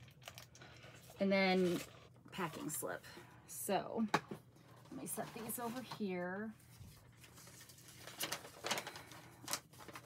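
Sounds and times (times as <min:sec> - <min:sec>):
paper and cardboard rustling: 0:04.7 - 0:10.0.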